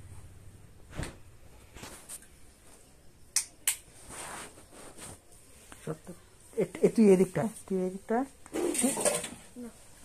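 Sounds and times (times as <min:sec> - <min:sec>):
soft hiss: 0:00.0 - 0:08.6.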